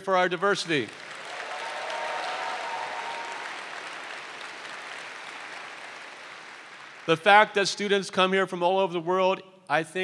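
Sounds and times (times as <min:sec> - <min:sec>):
audience applauding: 0:00.7 - 0:07.3.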